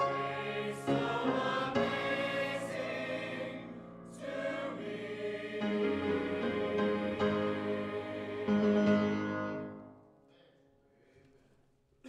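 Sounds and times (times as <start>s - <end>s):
choir singing final chord: 0.0s - 9.8s.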